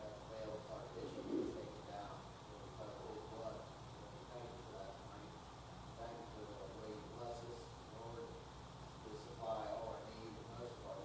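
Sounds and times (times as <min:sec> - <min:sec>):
man speaking quietly: 0:00.0 - 0:08.4, 0:09.0 - 0:11.0
short low vocal sound: 0:01.0 - 0:01.8.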